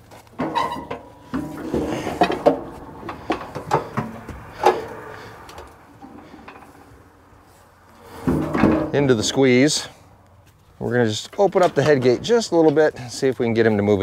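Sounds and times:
metal cattle chute clanking: 0.3 - 7.1, 8.0 - 9.6, 11.1 - 12.9.

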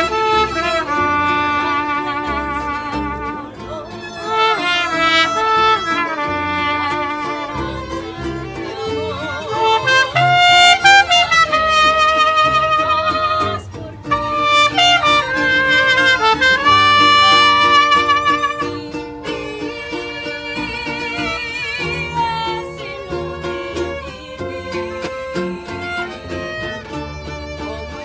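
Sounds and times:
trumpets playing held notes: 0.0 - 3.6, 4.2 - 8.6, 9.4 - 19.9
bass guitar plucking: 0.0 - 28.0
strummed guitar: 0.0 - 28.0
violins: 0.0 - 28.0.

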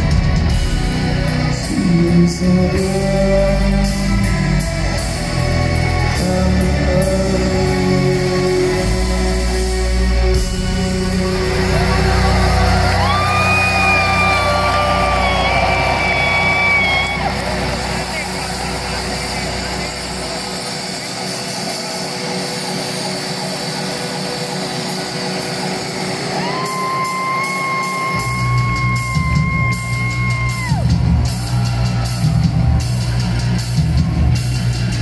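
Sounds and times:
crowd noise: 0.0 - 35.0
heavy metal band playing live: 0.0 - 35.0.

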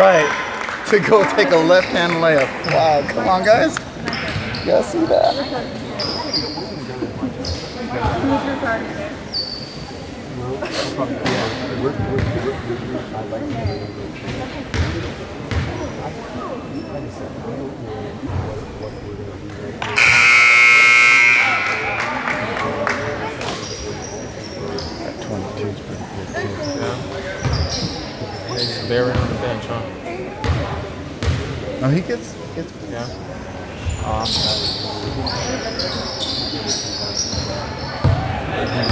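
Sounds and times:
crowd chatter: 0.0 - 38.9
shoe squeak: 4.1 - 6.8, 9.3 - 10.0, 13.5 - 14.1, 23.6 - 25.2, 26.3 - 29.2, 33.8 - 38.9
basketball bouncing on wooden floor: 14.7 - 15.7
scoreboard buzzer: 19.8 - 22.3.

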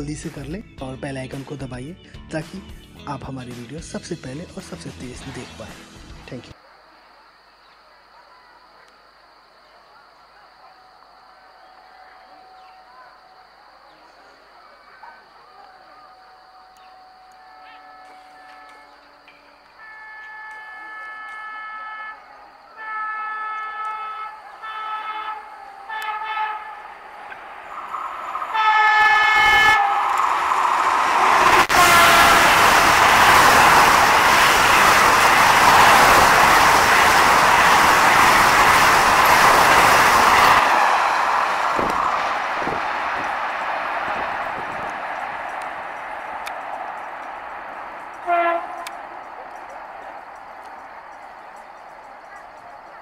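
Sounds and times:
train passing at high speed: 9.1 - 53.0
train horn blasts: 15.6 - 30.4, 31.0 - 35.8, 48.0 - 50.7.

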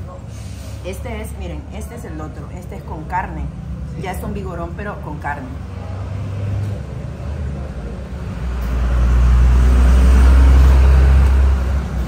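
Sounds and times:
vehicle engine rumble passing: 3.5 - 12.0.

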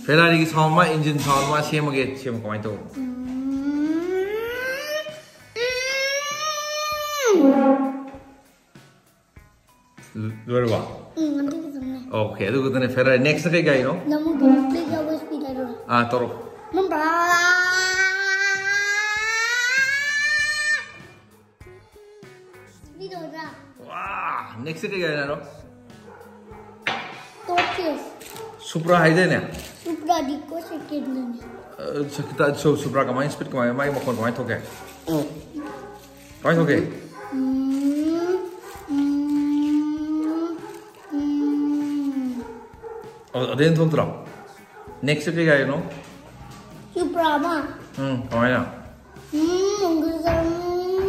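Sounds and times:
boy imitating car engine: 3.0 - 7.4, 49.4 - 51.0
boy talking: 11.2 - 12.2, 14.0 - 15.9, 16.7 - 18.8, 22.8 - 24.6, 27.5 - 28.2, 29.8 - 31.6, 46.9 - 47.9, 49.3 - 51.0.

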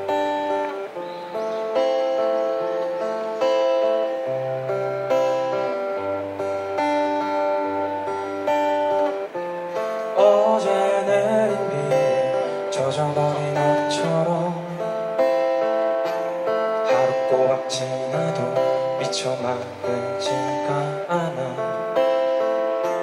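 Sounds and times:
live band playing: 0.0 - 23.0
strummed acoustic guitar: 0.0 - 23.0.

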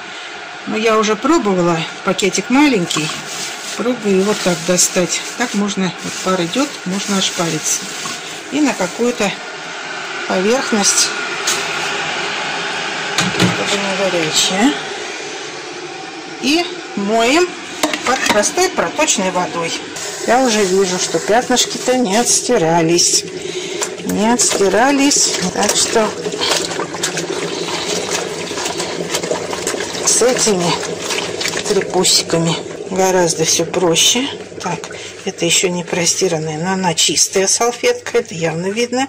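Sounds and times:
tap water running into sink: 2.2 - 9.6, 11.4 - 12.0, 13.2 - 14.4, 17.7 - 37.8
steady rushing noise: 2.4 - 25.9
wet cloths rubbing: 2.6 - 9.4, 20.0 - 36.1.

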